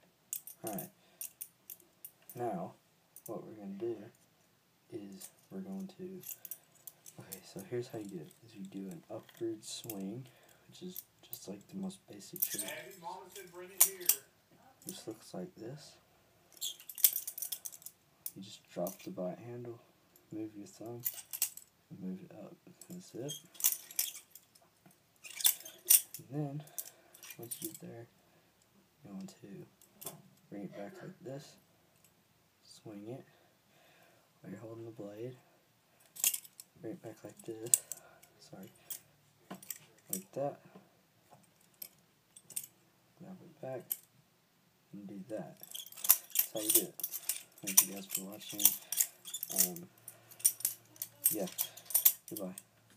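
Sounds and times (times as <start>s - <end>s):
butterfly knife handles clacking: 12.4s - 14.2s, 25.2s - 27.8s, 45.6s - 52.6s.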